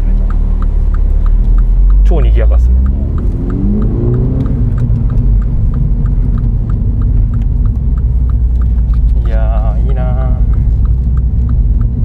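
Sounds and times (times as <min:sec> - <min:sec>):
car engine drone from inside cabin: 0:00.0 - 0:12.0
faint regular ticking: 0:00.0 - 0:12.0.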